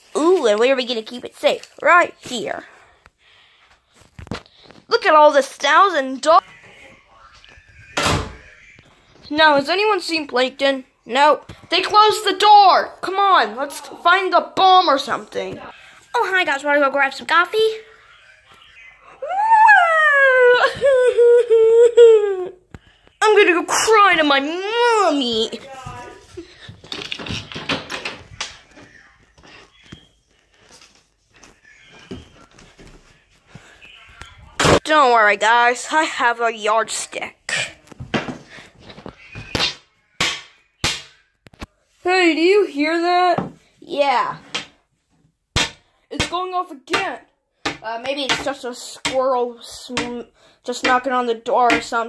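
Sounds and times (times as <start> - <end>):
person laughing: 20.2 - 22.6.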